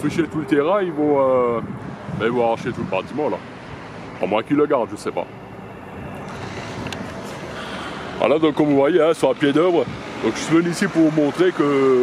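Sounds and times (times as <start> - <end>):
engine drone: 0.0 - 12.0
outdoor noise: 0.0 - 12.0.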